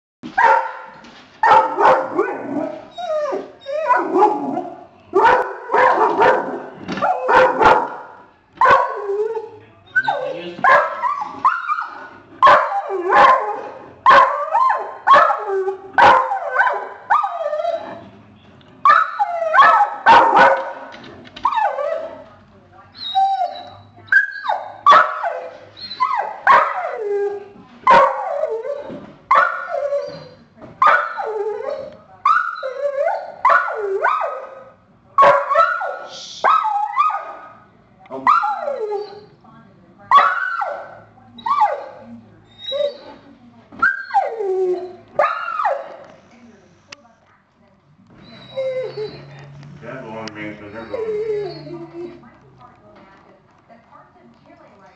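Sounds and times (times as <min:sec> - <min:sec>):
dog whining bark: 0:00.4 - 0:00.8, 0:01.4 - 0:18.0, 0:18.8 - 0:20.8, 0:23.0 - 0:27.1, 0:27.9 - 0:37.6, 0:38.2 - 0:39.3, 0:40.1 - 0:43.2, 0:43.8 - 0:46.0, 0:50.7 - 0:52.2.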